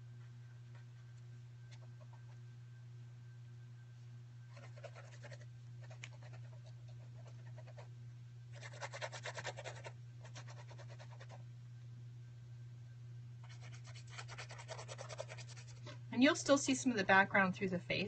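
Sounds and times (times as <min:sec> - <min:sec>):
low electrical hum: 0:00.0 - 0:18.0
paintbrush scrubbing on paper: 0:04.5 - 0:07.8, 0:08.6 - 0:11.4, 0:13.4 - 0:15.9.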